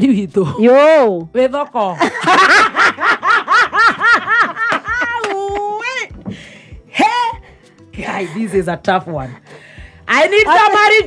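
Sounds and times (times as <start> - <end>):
woman laughing: 1.8 - 6.1.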